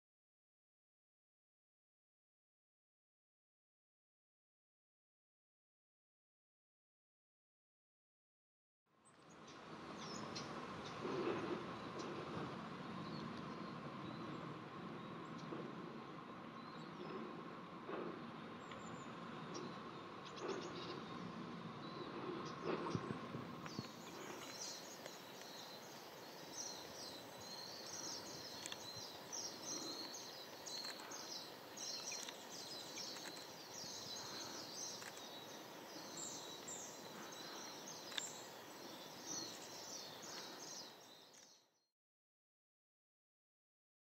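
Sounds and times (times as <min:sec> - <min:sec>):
birds chirping: 0:09.0 - 0:41.8.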